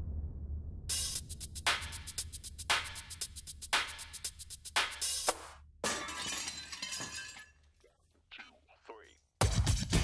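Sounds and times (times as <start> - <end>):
glass shattering: 5.8 - 7.7.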